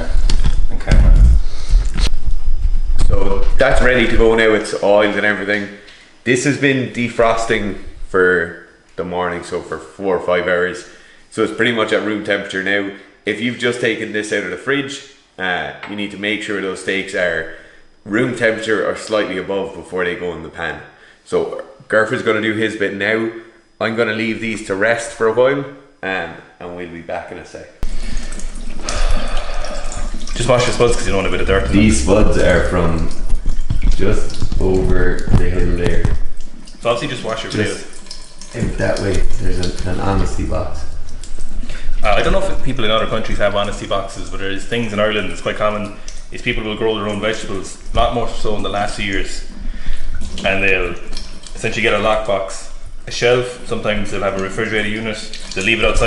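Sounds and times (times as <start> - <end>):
heavy dull thump: 0.7 - 2.0
potatoes rubbed under water: 27.8 - 43.6
tap water running into sink: 27.8 - 56.0.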